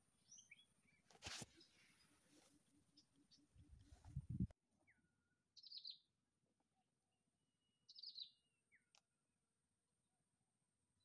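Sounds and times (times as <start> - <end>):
small birds chirping: 0.0 - 6.2, 7.6 - 9.1.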